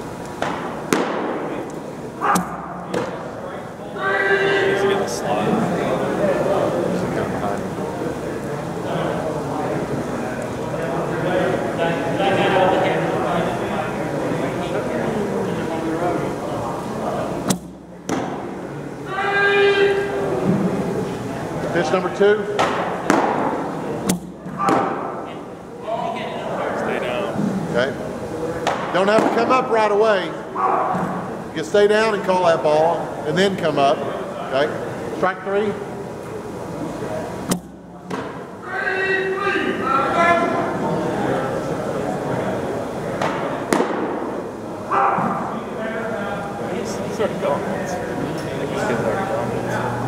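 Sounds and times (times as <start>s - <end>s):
murmur of voices in a hall: 0.0s - 50.0s
sharp knocks echoing in hall: 0.3s - 3.3s, 17.4s - 18.7s, 22.5s - 25.3s, 28.6s - 29.9s, 43.2s - 45.6s.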